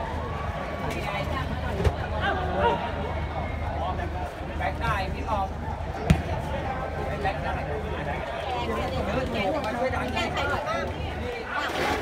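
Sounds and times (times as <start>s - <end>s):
chatter of voices: 0.0s - 12.0s
football kick thud: 6.0s - 6.4s.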